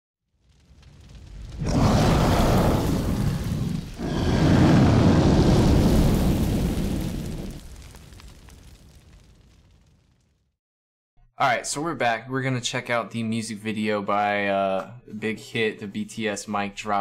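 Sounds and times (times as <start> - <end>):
explosion and fire sound effects: 0.2 - 10.6.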